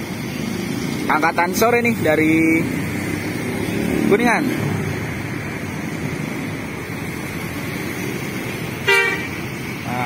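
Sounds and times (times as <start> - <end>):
bus diesel engine running: 0.0 - 10.0
road traffic noise: 0.0 - 10.0
loud horn toot: 8.8 - 9.4.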